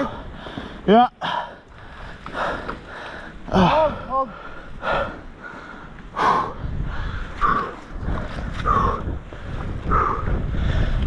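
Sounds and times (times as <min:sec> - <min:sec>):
wind rumble on microphone: 0:01.7 - 0:11.0.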